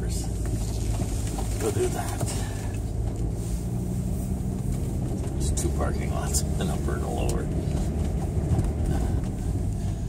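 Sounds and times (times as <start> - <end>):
car engine and tyres rumble: 0.0 - 10.0.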